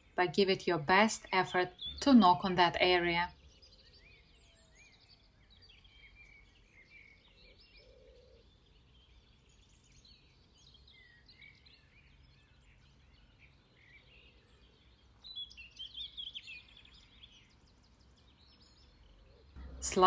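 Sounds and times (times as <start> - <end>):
songbirds singing: 0.0 - 20.0.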